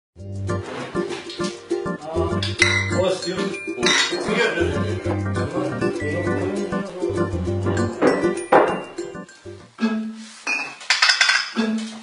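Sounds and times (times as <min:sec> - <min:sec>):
glass bottles struck ringing notes: 0:02.3 - 0:09.7, 0:10.5 - 0:11.6.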